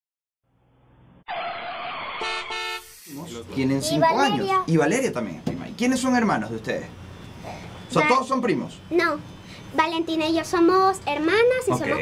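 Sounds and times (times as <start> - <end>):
tire screech: 1.3 - 3.1.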